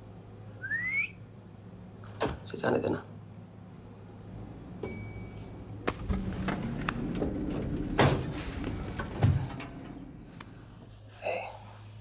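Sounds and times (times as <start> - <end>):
rustling and shuffling: 5.3 - 12.0.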